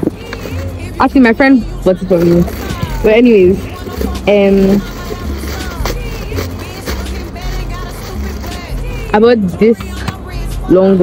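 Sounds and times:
music with deep bass beat: 0.0 - 11.0.

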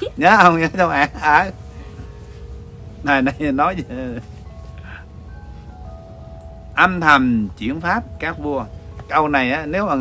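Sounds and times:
faint electronic tune: 0.0 - 10.0
low steady rumble: 0.0 - 10.0.

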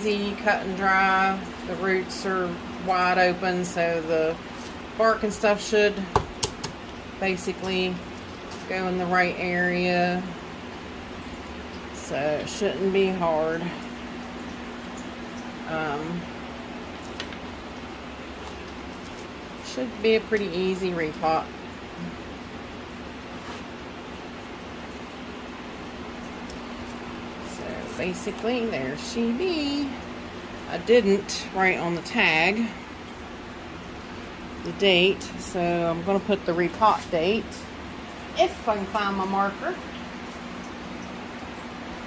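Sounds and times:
room hum and hiss: 0.0 - 42.0.

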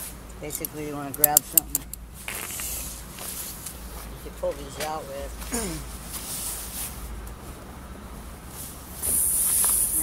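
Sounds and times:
air hissing out of tire: 9.0 - 10.0.

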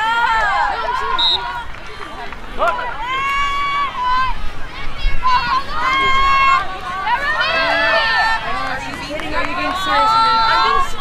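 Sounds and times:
girls shouting: 0.0 - 1.7, 2.6 - 11.0.

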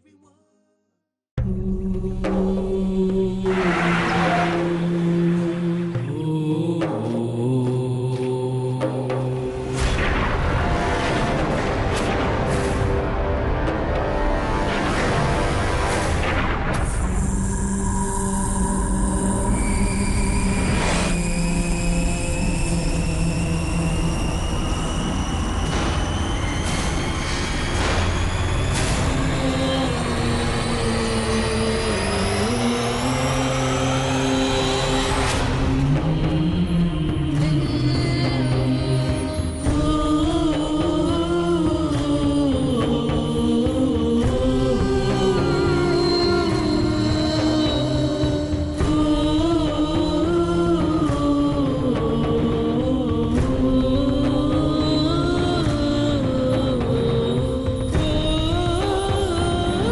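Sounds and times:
wordless chant-like voices: 1.4 - 59.9
rising synth riser: 9.8 - 36.4.

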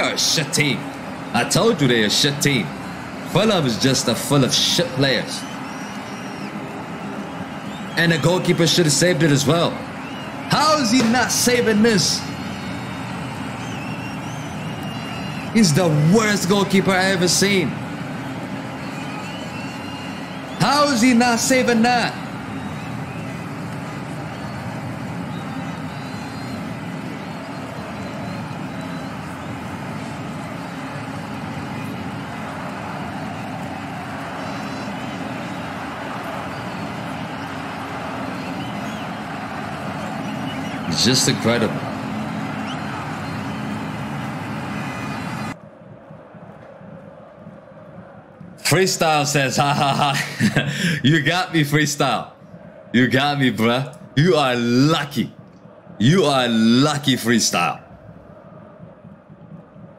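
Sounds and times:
steady background noise: 0.0 - 59.9.

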